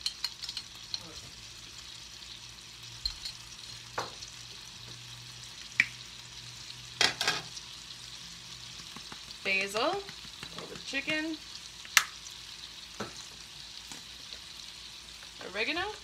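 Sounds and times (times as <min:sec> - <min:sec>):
chicken sizzling in a skillet: 0:00.0 - 0:16.0
sharp clicks and taps: 0:08.7 - 0:12.1.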